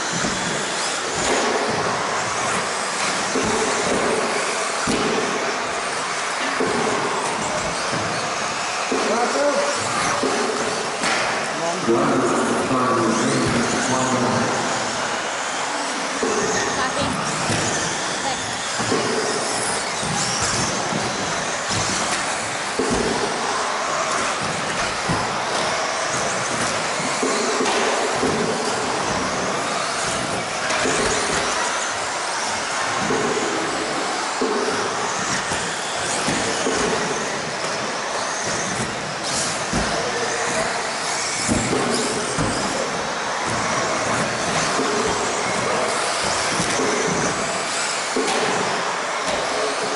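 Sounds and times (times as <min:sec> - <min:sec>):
rc cars racing: 0:00.0 - 0:49.9.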